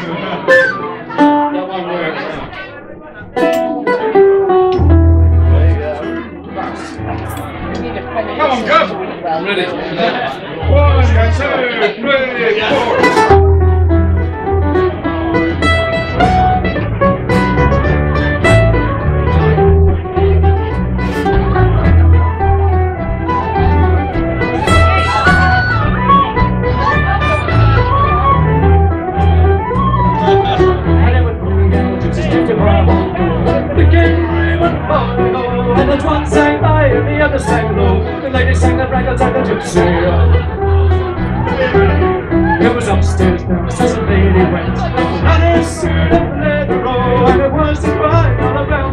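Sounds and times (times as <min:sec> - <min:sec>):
strummed acoustic guitars: 0:00.0 - 0:09.0, 0:12.7 - 0:48.9
folk band playing live: 0:00.0 - 0:09.2, 0:09.8 - 0:48.9
plucked melody: 0:00.0 - 0:09.2, 0:12.6 - 0:48.9
steady bass notes: 0:03.2 - 0:08.5, 0:10.6 - 0:11.5, 0:12.9 - 0:48.9.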